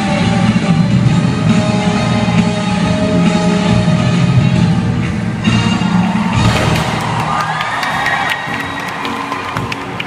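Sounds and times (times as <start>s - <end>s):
crowd cheering: 5.8s - 10.0s
crowd shouting high: 6.1s - 10.0s
loud dance music: 6.4s - 8.9s.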